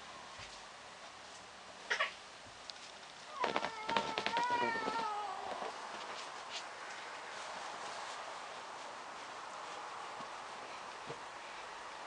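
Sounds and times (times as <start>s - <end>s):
cat meowing: 3.3s - 5.8s.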